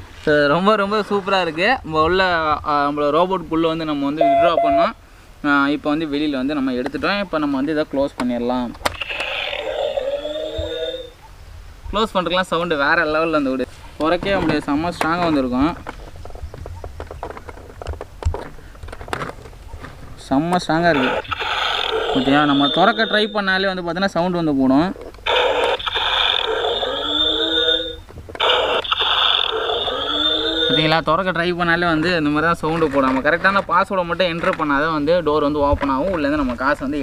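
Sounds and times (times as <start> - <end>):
electronic wavering tone: 4.2 - 4.9, 9.8 - 11.2, 21.1 - 23.6, 25.3 - 30.9
tinny distorted toy speaker sound: 8.8 - 11.1, 20.9 - 23.3, 25.2 - 31.0.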